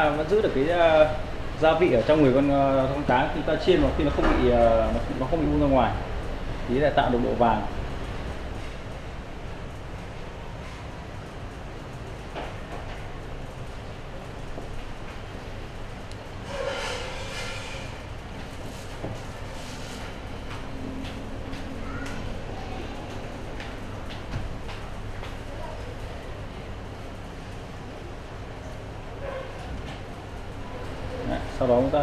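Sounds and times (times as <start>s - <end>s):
low room rumble: 0.0s - 32.0s.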